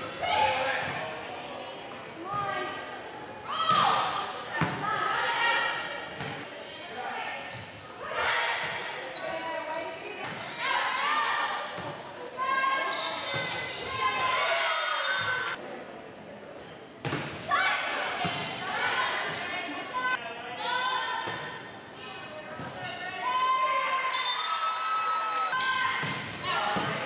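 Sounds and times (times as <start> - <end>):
people shouting in a gymnasium: 0.0 - 15.6, 17.3 - 27.0.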